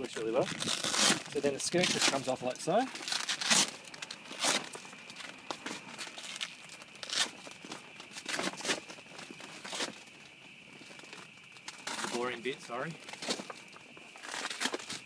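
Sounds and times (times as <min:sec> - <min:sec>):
velcro ripping apart: 0:00.4 - 0:02.4, 0:03.0 - 0:04.8, 0:06.1 - 0:07.4.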